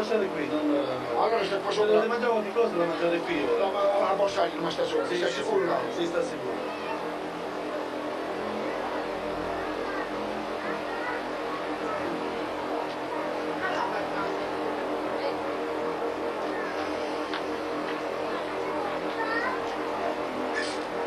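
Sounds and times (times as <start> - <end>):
faint voices: 0.0 - 21.0.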